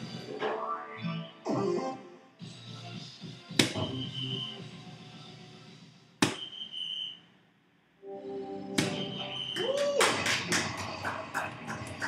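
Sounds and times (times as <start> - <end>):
dart hitting electronic dartboard: 3.5 - 3.9, 6.2 - 6.5, 8.8 - 9.1.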